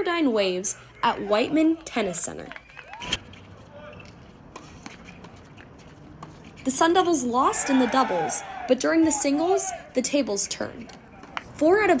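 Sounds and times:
low open-air background: 0:00.0 - 0:12.0
racket hitting tennis ball: 0:04.0 - 0:07.6.

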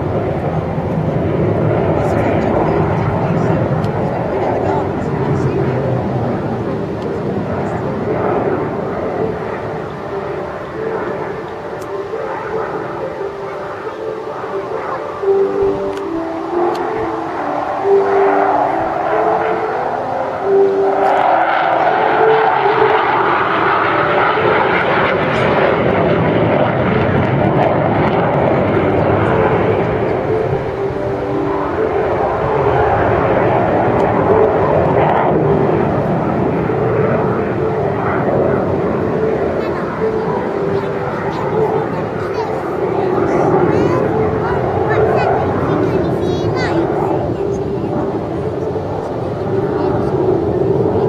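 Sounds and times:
jet flying past: 0:00.0 - 0:51.0.

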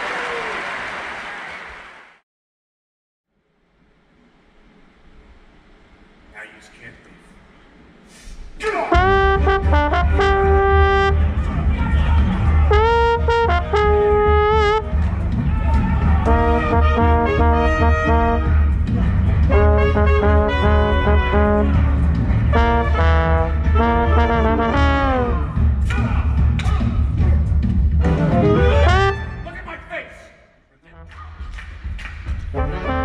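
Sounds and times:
brass section playing punchy phrases: 0:08.7 - 0:26.2, 0:28.0 - 0:29.8, 0:32.4 - 0:33.0
steady low bass: 0:09.0 - 0:29.3.

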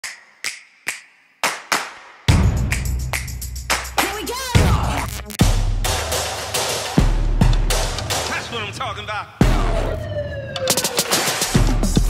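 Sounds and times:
clap-like percussion hits: 0:00.0 - 0:04.8, 0:05.4 - 0:08.5, 0:10.9 - 0:12.0.

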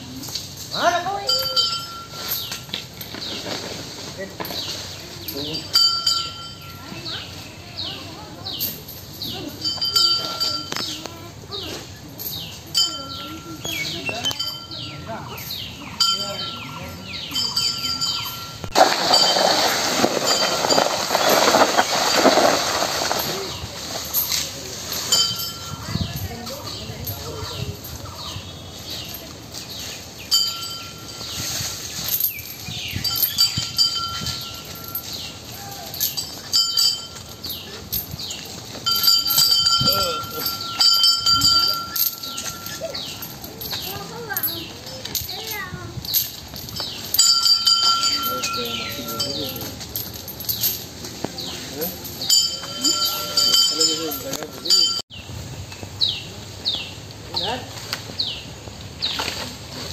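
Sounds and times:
dry leaves dragged over stony path: 0:00.0 - 0:05.7, 0:18.3 - 0:59.9
small metal bell ringing: 0:00.7 - 0:03.3, 0:04.5 - 0:23.5, 0:24.1 - 0:55.1.

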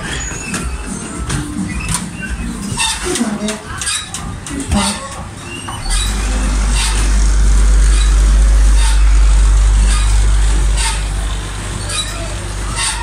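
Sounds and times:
loud low machinery rumble: 0:04.4 - 0:13.0.

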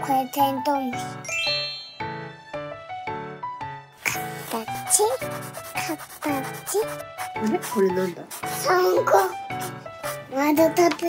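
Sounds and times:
gentle children's music: 0:00.0 - 0:11.0
rising tinkling chime: 0:01.2 - 0:02.7.

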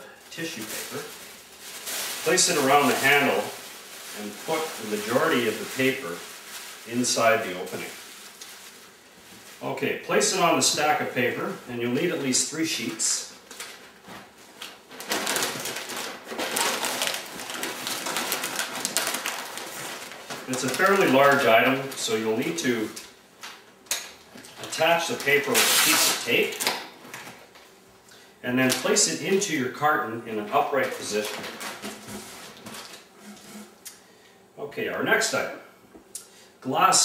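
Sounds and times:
packing paper crinkling: 0:00.0 - 0:09.7, 0:10.3 - 0:27.7, 0:30.5 - 0:33.7
cardboard being handled: 0:30.9 - 0:33.7.

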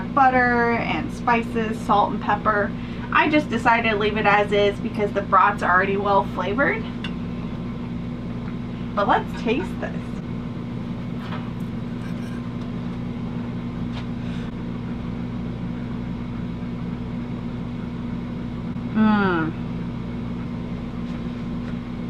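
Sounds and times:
low mechanical hum: 0:00.0 - 0:22.0
woman humming mmm: 0:18.9 - 0:19.7.

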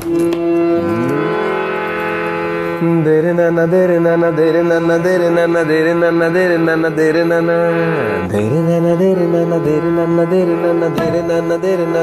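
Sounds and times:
harmonium accompaniment: 0:00.0 - 0:12.0.

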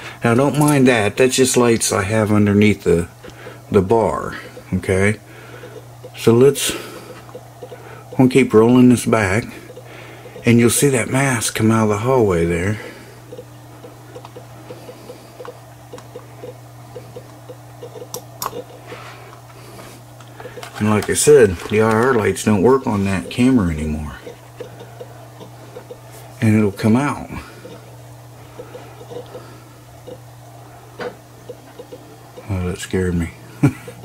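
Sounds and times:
steady low hum: 0:00.0 - 0:34.0
mouse scroll wheel ticking: 0:13.3 - 0:18.7, 0:31.5 - 0:32.5.

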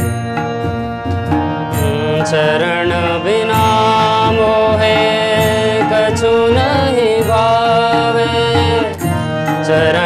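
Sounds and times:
hand drums beating: 0:00.0 - 0:10.0
harmonium: 0:00.0 - 0:10.0
man singing: 0:01.5 - 0:10.0.

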